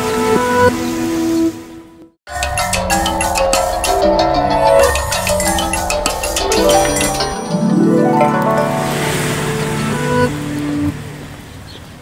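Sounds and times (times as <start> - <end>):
jingle notes over low tone: 2.3 - 10.2.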